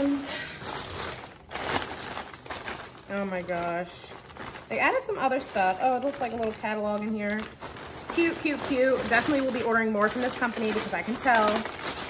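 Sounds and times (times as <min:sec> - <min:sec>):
packaging crinkling: 0:00.0 - 0:12.0.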